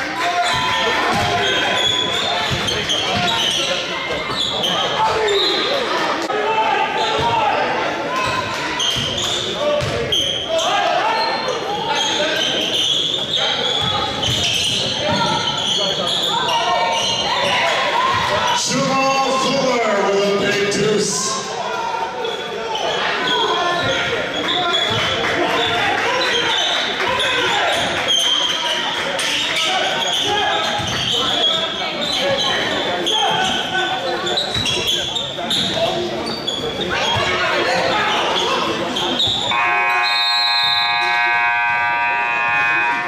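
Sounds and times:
players' voices: 0:00.0 - 0:43.0
scoreboard buzzer: 0:39.5 - 0:43.0.

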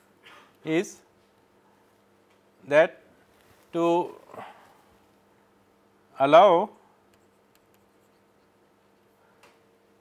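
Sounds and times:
faint electrical hum: 0:00.0 - 0:10.0
man speaking: 0:03.7 - 0:04.5.

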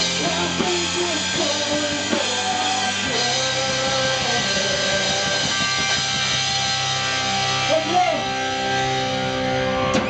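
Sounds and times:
bass and drums: 0:00.0 - 0:10.0
distorted electric guitar chords: 0:00.0 - 0:10.0
person's voice: 0:07.6 - 0:08.4.

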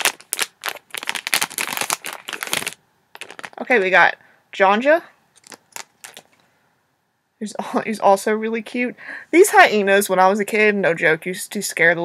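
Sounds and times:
foil wrapper crinkling and tearing: 0:00.0 - 0:03.6, 0:05.4 - 0:06.3.

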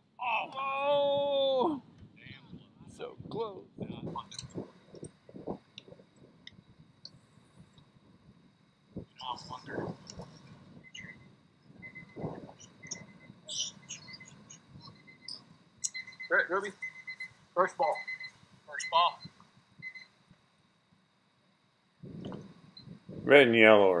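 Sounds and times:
faint talking voices: 0:00.2 - 0:04.7, 0:09.2 - 0:10.4, 0:12.2 - 0:14.6.

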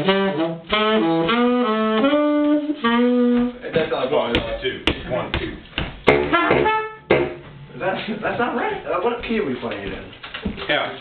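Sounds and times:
saxophones and trumpet playing: 0:00.0 - 0:03.7, 0:06.3 - 0:07.1.

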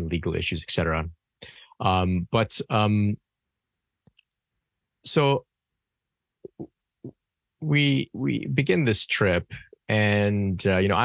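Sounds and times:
man speaking: 0:00.0 - 0:01.1, 0:01.8 - 0:03.2, 0:05.1 - 0:05.4, 0:07.6 - 0:11.0.

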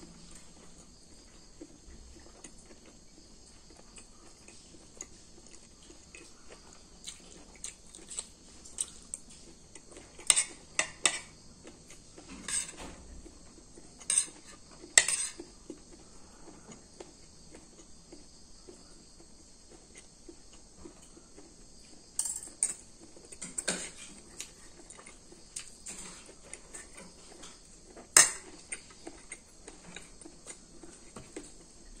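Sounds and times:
cutlery clinking on a plate: 0:10.2 - 0:11.3, 0:12.3 - 0:13.0, 0:14.0 - 0:15.4, 0:22.2 - 0:22.8, 0:23.4 - 0:24.1, 0:28.2 - 0:28.6.

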